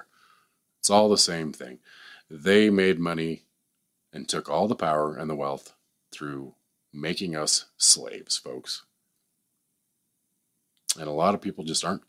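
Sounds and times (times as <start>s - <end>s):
man speaking: 0.8s - 3.5s, 4.2s - 8.9s, 10.9s - 12.0s.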